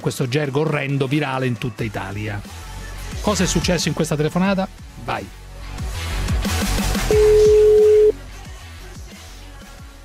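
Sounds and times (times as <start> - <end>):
music with low beat: 7.1 - 8.2
telephone ringback beep: 7.1 - 8.2.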